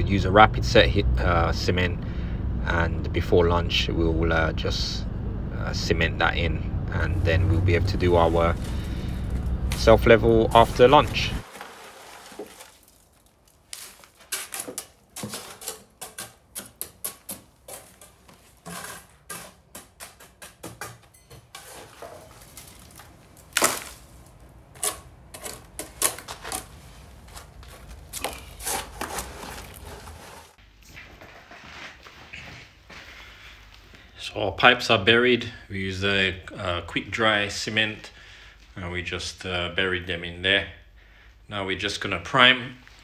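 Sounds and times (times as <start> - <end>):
cement scraping and tapping: 8.1 - 30.6.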